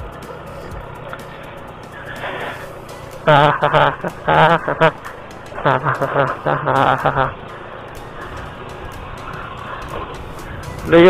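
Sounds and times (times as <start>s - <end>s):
motorcycle engine rumble: 0.0s - 11.0s
wind and road noise: 0.0s - 11.0s.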